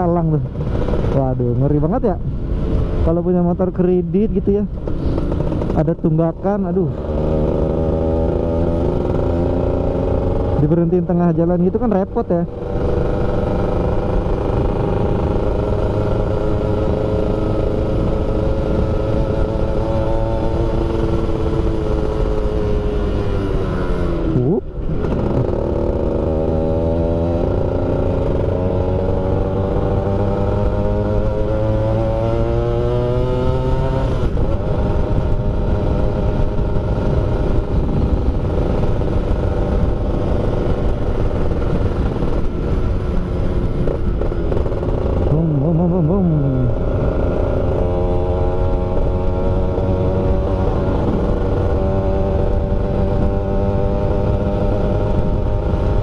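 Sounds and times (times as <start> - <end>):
low wind rumble: 0.0 - 56.0
two-stroke motorcycle engine: 4.1 - 56.0.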